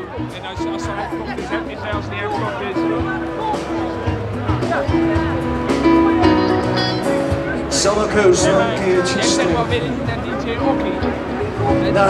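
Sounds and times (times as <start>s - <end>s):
live band music: 0.0s - 12.0s
man singing: 7.7s - 10.3s, 11.7s - 12.0s.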